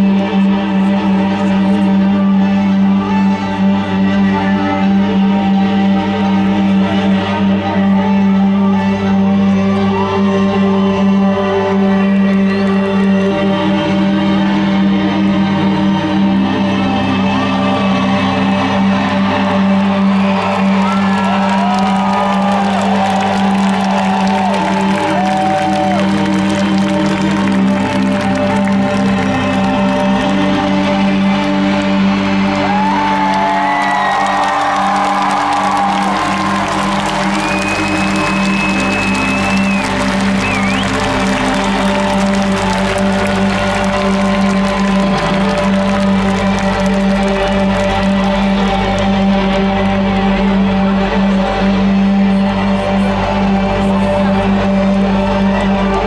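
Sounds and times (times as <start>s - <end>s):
droning music over pa: 0.0s - 56.0s
crowd cheering: 17.1s - 56.0s.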